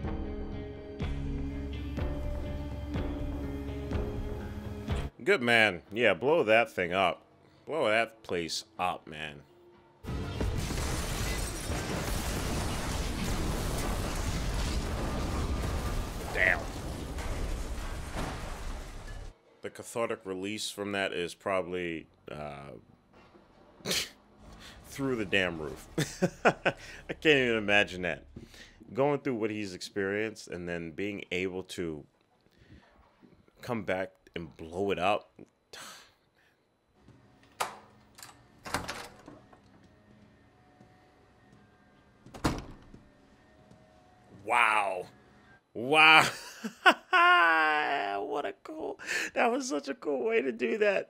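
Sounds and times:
rumbling explosion blast: 10.3s - 19.3s.

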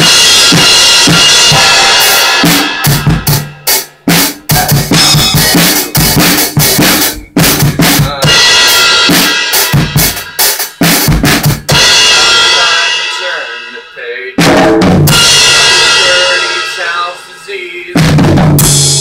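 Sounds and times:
cymbals washing: 0.0s - 13.9s, 15.1s - 17.6s
acoustic drum kit played hard: 0.0s - 19.0s.

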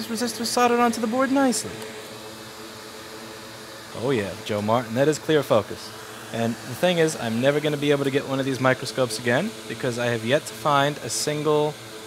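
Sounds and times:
fan hiss: 0.0s - 12.0s.

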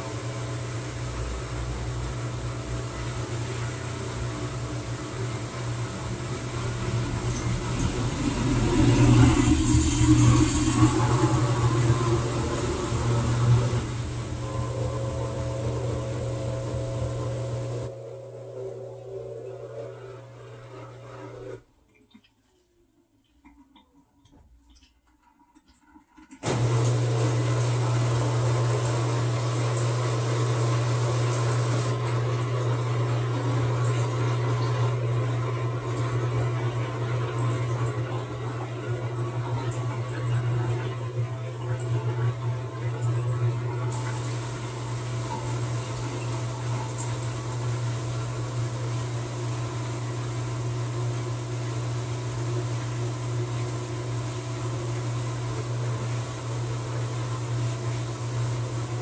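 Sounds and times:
washing machine drum humming: 0.0s - 22.6s, 23.2s - 59.0s.

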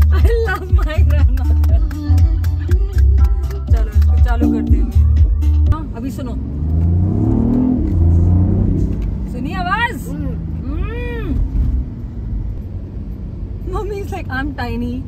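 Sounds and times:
car engine accelerating: 3.9s - 13.4s.

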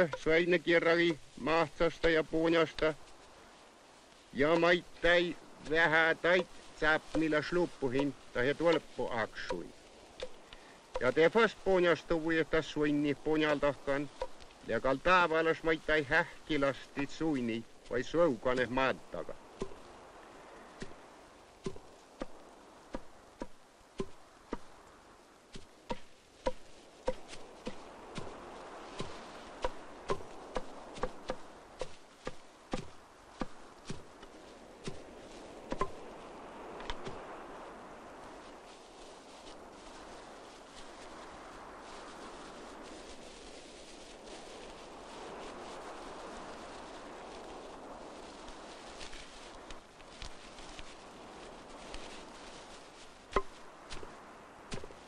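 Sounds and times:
wooden clubs knocking on stones: 5.6s - 11.5s
sedge bundle knocking on stone: 25.6s - 28.3s.

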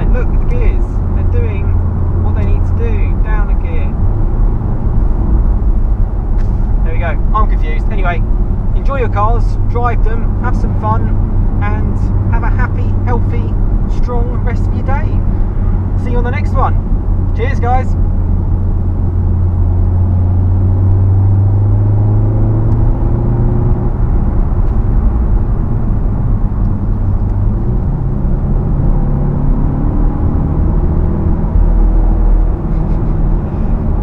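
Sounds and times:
car engine accelerating: 0.0s - 34.0s
road noise inside car: 0.0s - 34.0s.

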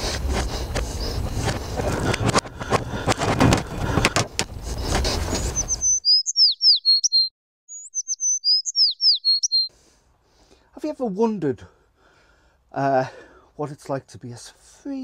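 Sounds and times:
microphone handling rustling: 0.0s - 5.5s
bird song: 5.4s - 9.7s.

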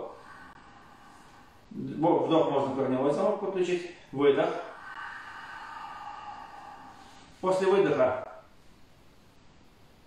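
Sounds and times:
man exhaling: 0.0s - 1.8s, 4.5s - 7.6s.

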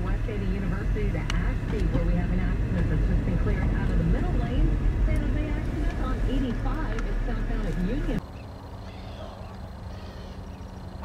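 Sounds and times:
radio announcer talking: 0.0s - 8.2s
car engine rumble: 0.0s - 11.0s.

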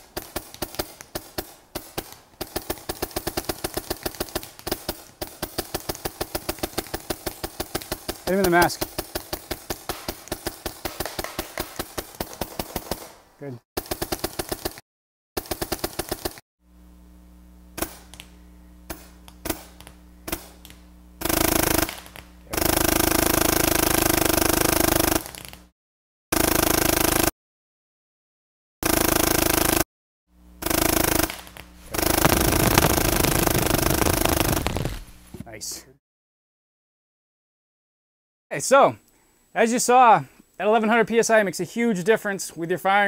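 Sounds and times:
paintball marker firing: 0.0s - 13.2s, 13.8s - 14.8s, 15.4s - 16.4s, 17.8s - 18.3s, 18.9s - 25.6s, 30.6s - 35.2s
steady low hum: 16.6s - 23.8s, 30.4s - 35.9s
scattered clicks: 30.9s - 35.0s.

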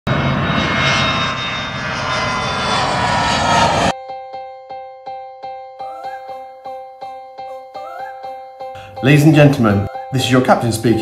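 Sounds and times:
jet engines roaring with whine: 0.1s - 4.0s.

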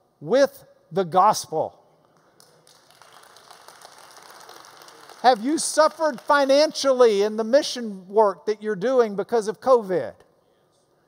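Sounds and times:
faint applause: 2.4s - 6.7s.

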